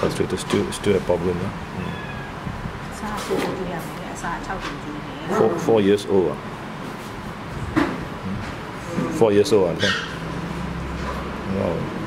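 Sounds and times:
cat meowing: 1.8s - 2.4s.

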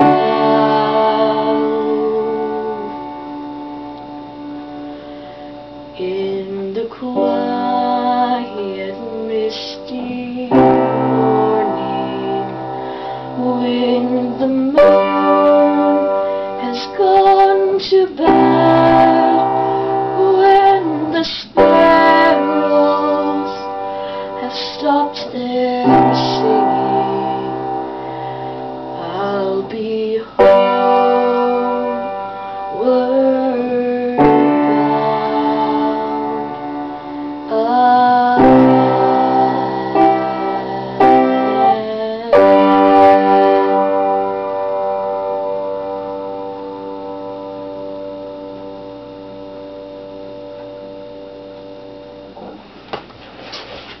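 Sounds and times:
woman singing: 0.0s - 3.6s, 5.8s - 44.1s
piano chords: 0.0s - 52.7s.

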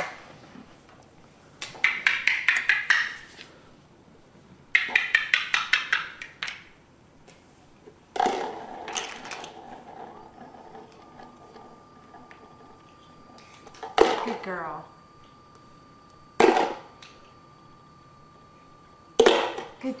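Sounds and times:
plastic toy blocks tapping: 1.7s - 3.2s, 4.8s - 6.7s
held steady-pitch tone: 8.6s - 20.0s.

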